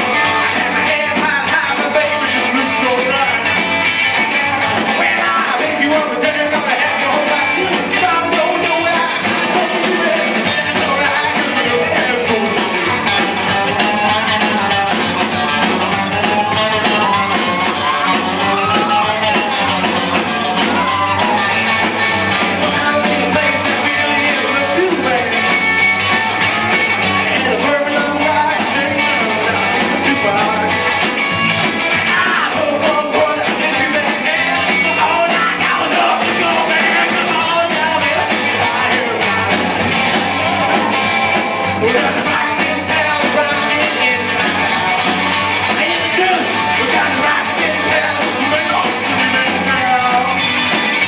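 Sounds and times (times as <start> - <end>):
drum kit: 0.0 - 51.0
electric guitars: 0.0 - 51.0
person singing: 0.0 - 51.0.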